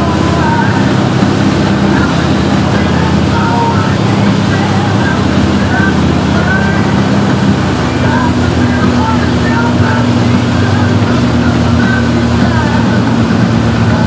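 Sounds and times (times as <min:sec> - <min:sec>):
boat engine running: 0:00.0 - 0:14.0
rushing wind and water: 0:00.0 - 0:14.0.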